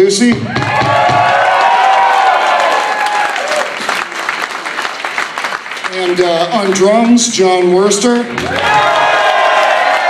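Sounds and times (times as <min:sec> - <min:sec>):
audience applauding and cheering: 0:00.4 - 0:07.2, 0:08.2 - 0:10.0
whoops and shouts: 0:00.5 - 0:03.7.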